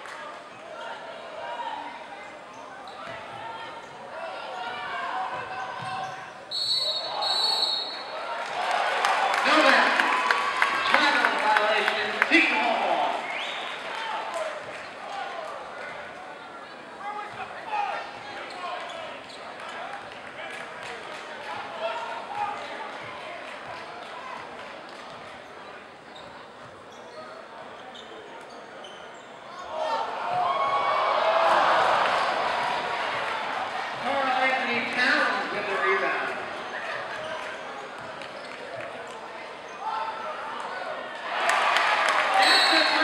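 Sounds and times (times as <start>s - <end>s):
chatter of spectators: 0.0s - 43.0s
voices in a gym: 0.0s - 43.0s.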